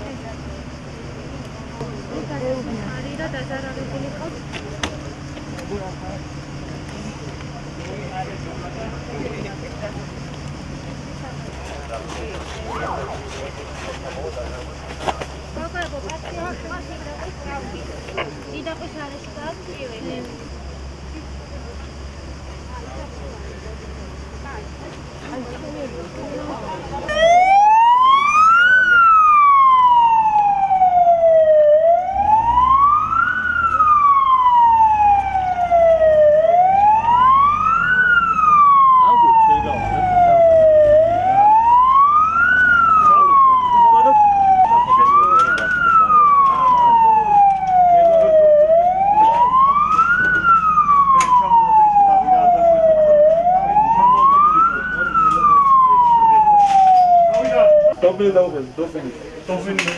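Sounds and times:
ambulance siren wailing: 12.7 - 13.3, 27.0 - 58.2.

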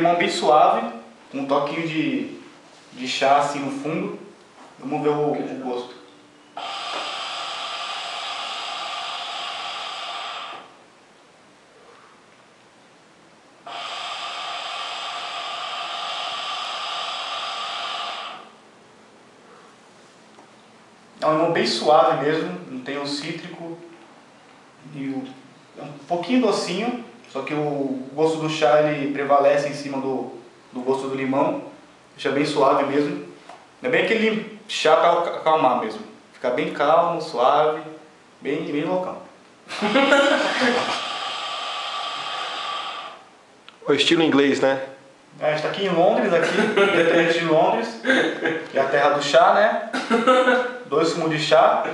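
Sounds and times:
hookah water bubbling: 6.6 - 10.8, 13.6 - 18.6, 40.5 - 43.8.

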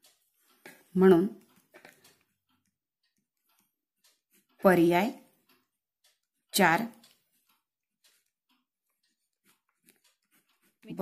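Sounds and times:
woman speaking: 0.9 - 1.4, 4.6 - 5.2, 6.5 - 7.0
marker pen writing on paper: 8.1 - 11.0.

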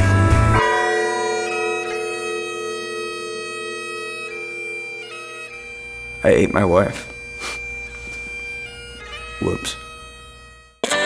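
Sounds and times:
bagpipes playing slow tune: 0.2 - 11.0.

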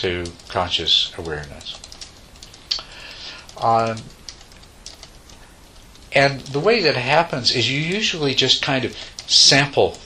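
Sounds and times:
faint room hiss: 0.0 - 10.0
soft clicks: 0.1 - 0.6, 1.2 - 6.6.

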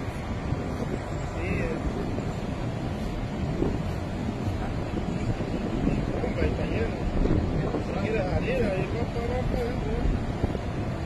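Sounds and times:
traffic noise: 0.0 - 11.0
wind: 0.0 - 11.0
faint voices: 1.0 - 10.9.

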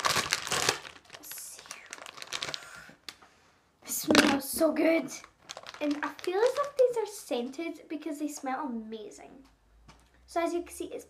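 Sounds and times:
plastic bag crinkling: 0.0 - 3.0, 4.1 - 7.0.

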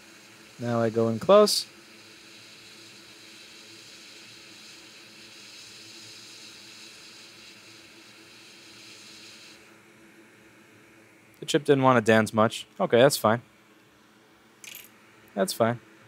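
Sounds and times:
hot air blower hissing: 0.0 - 11.2.

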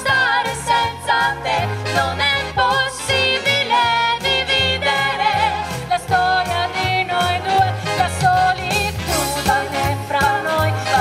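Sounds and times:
female vocal trio singing: 0.0 - 11.0.

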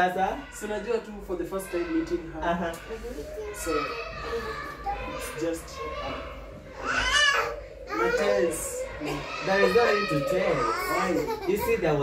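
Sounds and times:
people talking: 0.6 - 6.3, 7.9 - 12.0
small child's high-pitched voice: 3.2 - 11.1.

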